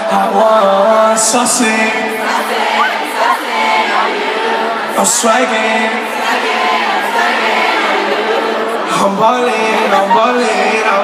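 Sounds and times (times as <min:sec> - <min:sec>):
man singing live: 0:00.0 - 0:03.0, 0:04.9 - 0:06.5, 0:08.5 - 0:11.0
crowd singing along: 0:00.0 - 0:11.0.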